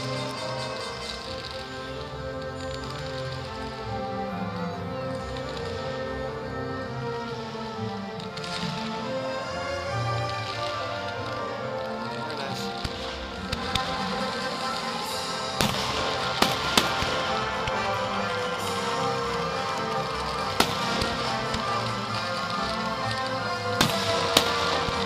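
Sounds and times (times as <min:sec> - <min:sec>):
music: 0:00.0 - 0:25.0
fireworks bangs and cracks: 0:12.8 - 0:25.0.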